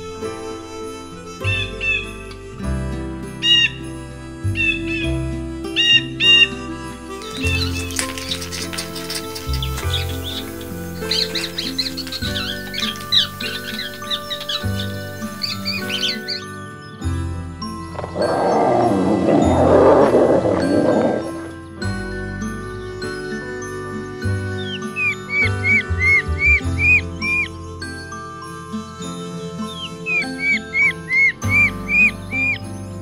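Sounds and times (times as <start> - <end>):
birds chirping: 0.0 - 33.0
calm background music: 0.0 - 33.0.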